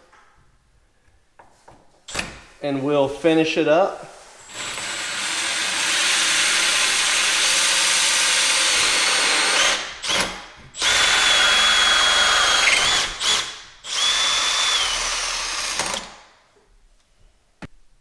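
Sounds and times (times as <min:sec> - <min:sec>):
cordless drill with hole saw: 0:04.4 - 0:16.2.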